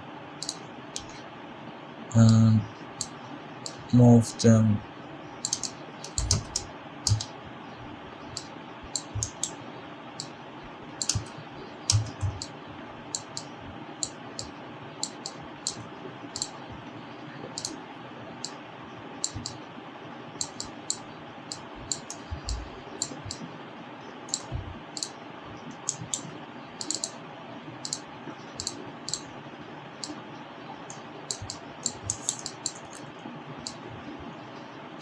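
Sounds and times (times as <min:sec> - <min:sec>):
background hiss and hum: 0:00.0 - 0:35.0
computer mouse clicks: 0:00.4 - 0:01.2, 0:05.4 - 0:07.3, 0:08.4 - 0:09.6, 0:11.0 - 0:12.5, 0:13.1 - 0:16.6, 0:17.6 - 0:17.8, 0:19.2 - 0:19.6, 0:20.4 - 0:23.4, 0:24.3 - 0:27.2, 0:27.8 - 0:28.0, 0:28.6 - 0:29.2, 0:30.9 - 0:33.8
keyboard key presses: 0:05.4 - 0:07.3, 0:11.9 - 0:12.5, 0:26.8 - 0:27.1, 0:31.3 - 0:33.0
dull low thumps: 0:24.5 - 0:24.8.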